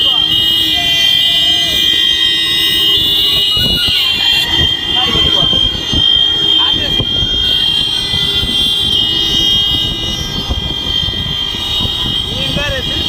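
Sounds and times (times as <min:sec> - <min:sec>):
steady high-pitched tone: 0:00.0 - 0:13.0
wind and road noise: 0:00.0 - 0:13.0.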